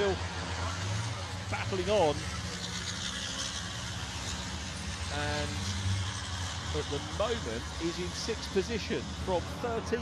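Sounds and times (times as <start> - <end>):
truck diesel engines: 0.0 - 10.0.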